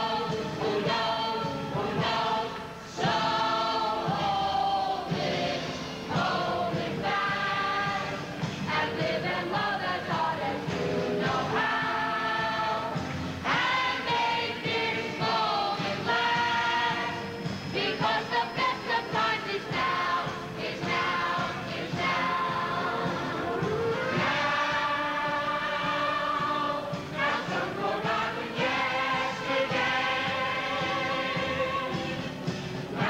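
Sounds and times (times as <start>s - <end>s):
mixed chorus singing: 0.0s - 33.0s.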